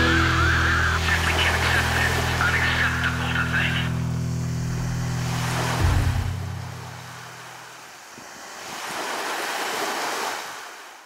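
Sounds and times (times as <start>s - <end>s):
steady low hum: 0.0s - 7.7s
sea surf washing: 0.0s - 11.0s.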